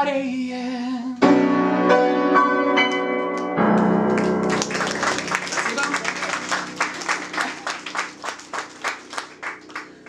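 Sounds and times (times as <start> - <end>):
piano notes ringing: 1.2 - 10.0
hand clapping: 3.3 - 10.0.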